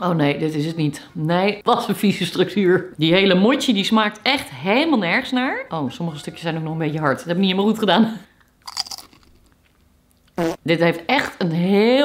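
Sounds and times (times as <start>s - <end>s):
crunchy bite and chewing: 8.6s - 10.6s.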